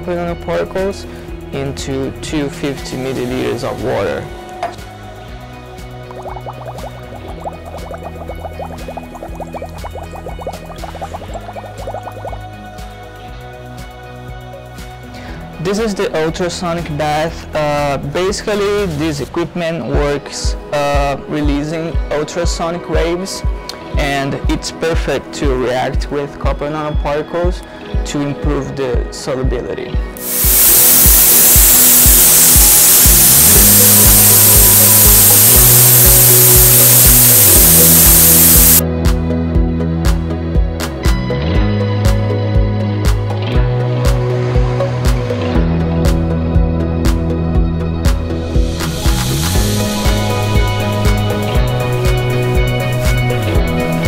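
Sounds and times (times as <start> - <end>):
background music: 0.0 - 54.0
ultrasonic bath hissing: 30.2 - 38.8, 48.8 - 54.0.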